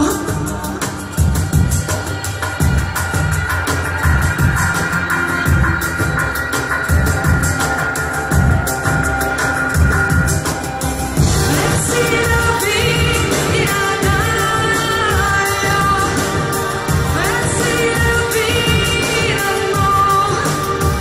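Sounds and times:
woman singing: 0.0s - 7.6s, 11.2s - 21.0s
electronic pop band playing: 0.0s - 21.0s.

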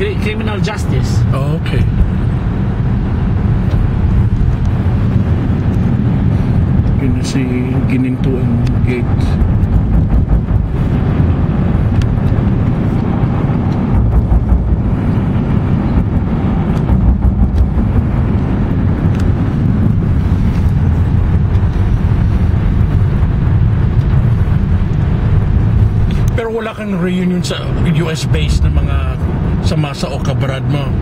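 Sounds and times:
car road and wind rumble: 0.0s - 31.0s.

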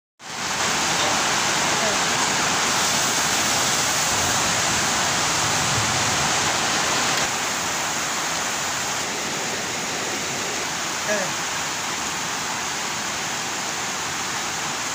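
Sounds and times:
spice paste sizzling in oil: 2.7s - 4.0s.

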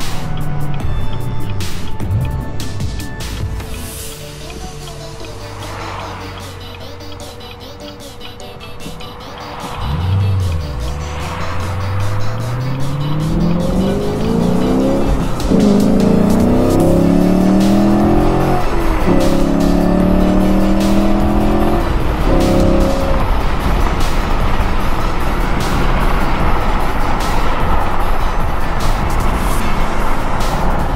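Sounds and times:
car engine accelerating with upshifts: 0.0s - 30.9s
road and wind noise: 0.0s - 30.9s.

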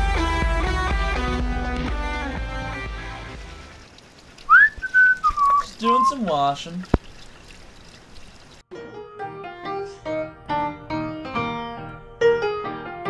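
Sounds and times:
music: 0.0s - 3.8s, 8.7s - 13.0s
whistled note: 4.5s - 6.2s.

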